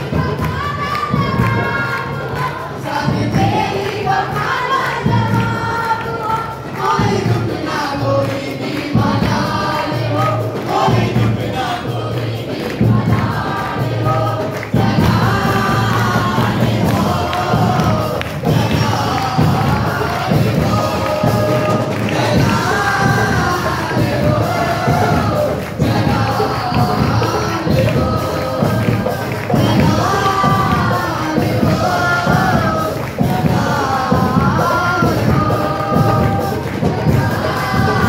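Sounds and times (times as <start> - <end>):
band accompaniment with steady beat: 0.0 - 38.0
congregation clapping: 0.0 - 38.0
congregation singing along: 0.0 - 38.0
lead singer through microphone: 0.0 - 38.0.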